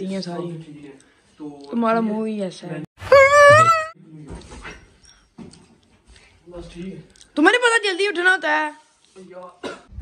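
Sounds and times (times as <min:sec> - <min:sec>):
man wailing cry: 0:03.0 - 0:04.0.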